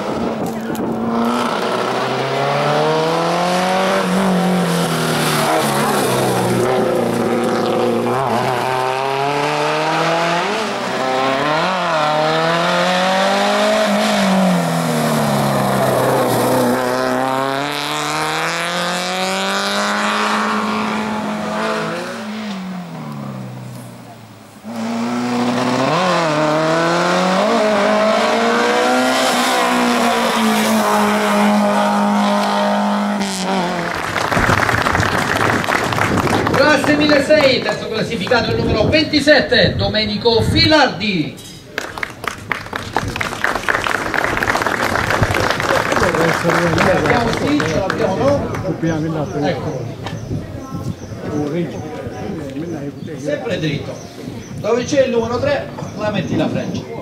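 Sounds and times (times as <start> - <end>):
race car engine revving: 0.0 - 38.8.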